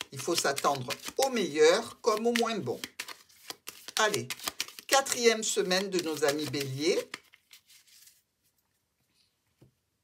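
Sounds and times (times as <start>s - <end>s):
playing cards handled: 0.0s - 8.7s.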